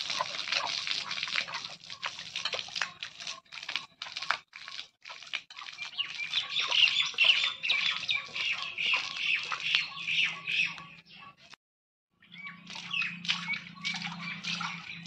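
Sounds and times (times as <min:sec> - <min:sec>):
water splattering on earth: 0:00.0 - 0:09.9, 0:12.6 - 0:15.0
birds squawking and chirping: 0:05.8 - 0:11.4, 0:12.2 - 0:15.0.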